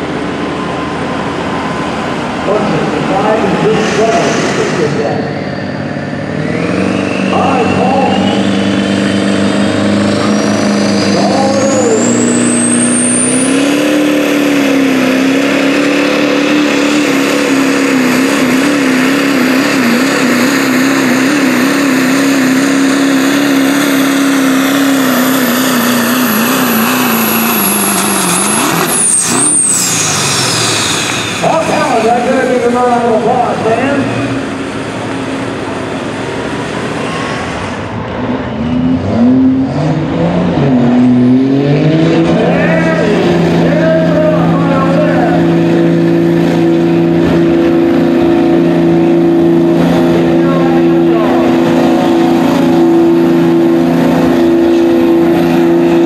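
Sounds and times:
diesel truck engine revving: 0.0s - 56.0s
man's voice: 2.4s - 5.3s, 7.3s - 8.4s, 11.1s - 12.3s, 31.4s - 34.2s, 42.3s - 45.5s
turbo whistle: 27.3s - 31.4s.

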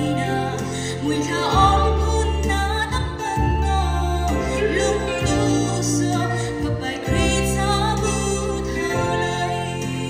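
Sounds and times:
sustained instrumental backing: 0.0s - 10.0s
woman singing a hymn: 0.0s - 10.0s.

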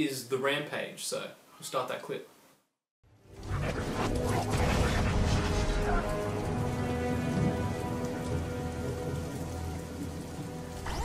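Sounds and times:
low rumble: 3.2s - 10.9s
steady rain: 3.4s - 11.0s.

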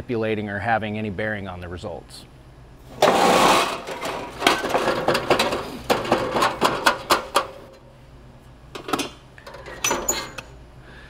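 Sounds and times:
small stones rattling on sheet metal: 3.0s - 7.8s.

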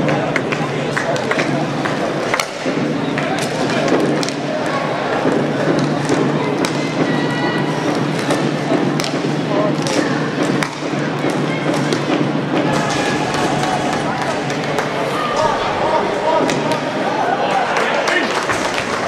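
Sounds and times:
din of voices: 0.0s - 18.8s
hockey sticks and puck clacking: 0.1s - 15.5s, 16.1s - 17.1s.

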